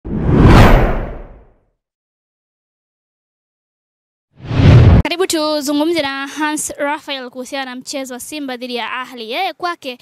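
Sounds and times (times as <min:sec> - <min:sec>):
whoosh sound effect: 0:00.1 - 0:01.4, 0:04.4 - 0:05.0.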